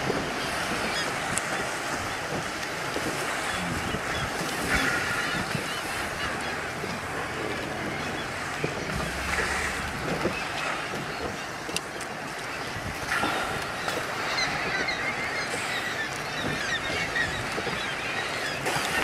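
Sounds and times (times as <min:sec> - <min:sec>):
walruses splashing in water: 0:02.7 - 0:12.0.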